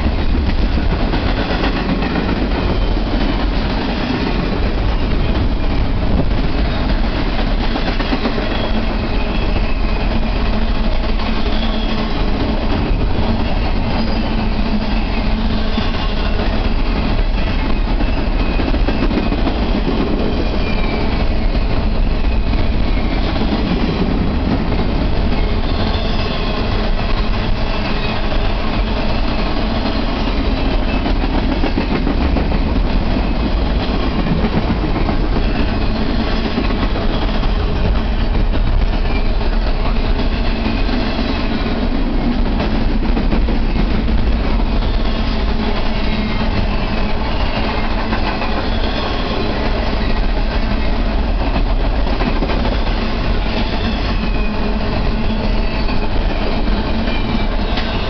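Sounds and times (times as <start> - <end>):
freight train wheels rumbling: 0.0 - 58.0.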